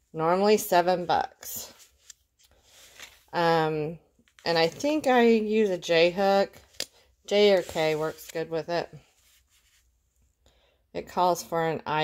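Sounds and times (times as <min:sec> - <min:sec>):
yarn and paper label rustling: 0:04.2 - 0:05.6, 0:06.2 - 0:09.9.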